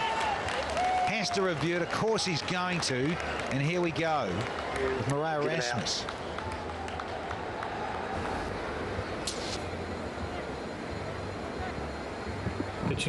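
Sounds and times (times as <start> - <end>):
murmur of spectators: 0.0 - 13.0
brief hiss: 9.2 - 9.7.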